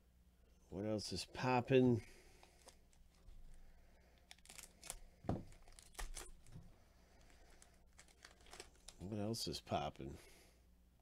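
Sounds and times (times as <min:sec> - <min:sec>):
wrappers crinkling and tearing: 0:04.2 - 0:06.6, 0:07.2 - 0:09.2.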